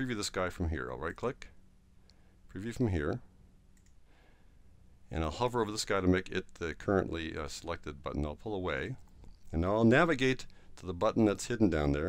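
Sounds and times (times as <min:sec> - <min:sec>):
low steady hum: 0:00.0 - 0:12.0
computer mouse click: 0:03.7 - 0:04.0.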